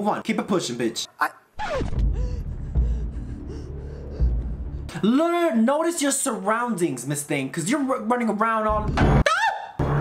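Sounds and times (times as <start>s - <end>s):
person gasping breaths: 2.1s - 5.0s
steady low rumble: 2.1s - 5.0s.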